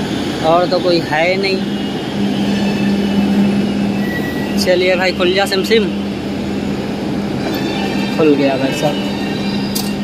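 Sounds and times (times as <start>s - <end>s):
metro train humming: 0.0s - 10.0s.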